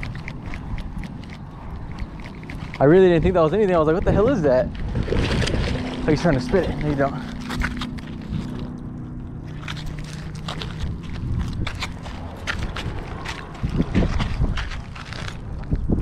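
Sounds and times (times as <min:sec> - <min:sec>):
wind rumbling on microphone: 0:00.0 - 0:16.0
footsteps on concrete: 0:06.6 - 0:15.5.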